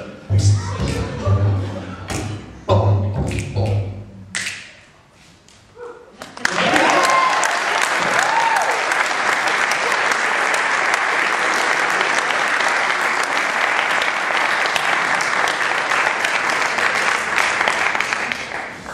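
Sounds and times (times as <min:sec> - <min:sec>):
audience applauding: 0:06.2 - 0:18.9
people whooping: 0:06.5 - 0:09.0.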